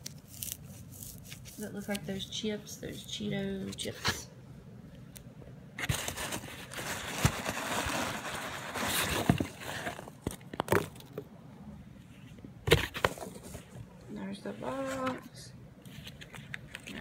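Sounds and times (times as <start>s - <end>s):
packing peanuts rustling: 5.8s - 11.0s.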